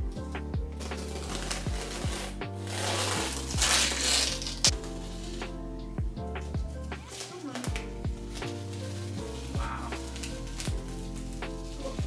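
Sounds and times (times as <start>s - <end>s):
lo-fi beat music: 0.0s - 12.0s
tape tearing off canvas: 0.8s - 5.5s.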